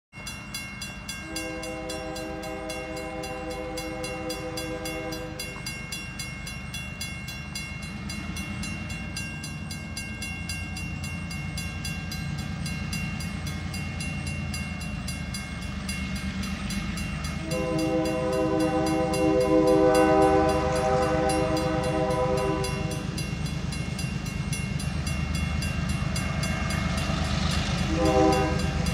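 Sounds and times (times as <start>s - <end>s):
level crossing bell ringing: 0.1s - 28.9s
locomotive rumble: 0.9s - 28.9s
locomotive horn: 1.2s - 5.6s, 17.3s - 23.2s, 27.6s - 28.9s.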